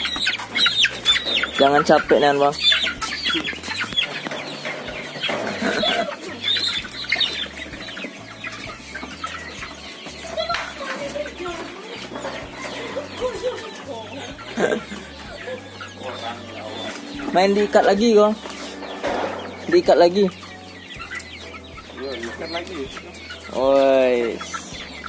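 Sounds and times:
young cockerels clucking and squawking: 0.0s - 25.0s.

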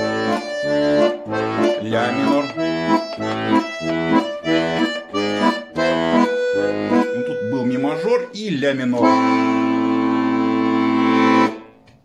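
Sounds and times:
button accordion chord: 0.0s - 12.0s.

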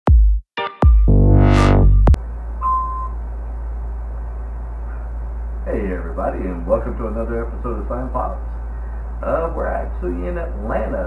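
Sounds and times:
intro music: 0.1s - 2.2s
low room hum: 2.1s - 11.0s
short high beep: 2.6s - 3.2s.

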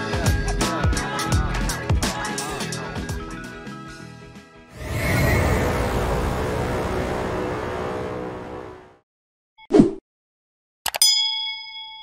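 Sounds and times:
bright bell ding: 11.0s - 12.0s.

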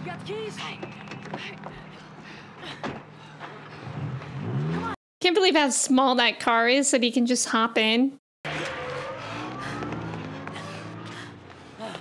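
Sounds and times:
small car engine speeding up: 3.7s - 5.0s, 8.5s - 12.0s.

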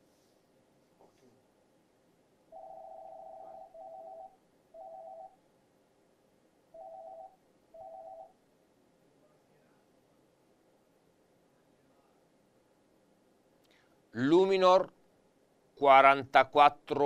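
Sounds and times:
telephone ringing: 2.5s - 5.4s, 6.7s - 8.4s.

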